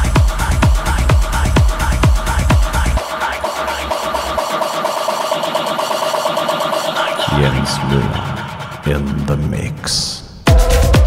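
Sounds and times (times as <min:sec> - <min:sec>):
bass: 0:00.0 - 0:03.0, 0:07.3 - 0:11.0.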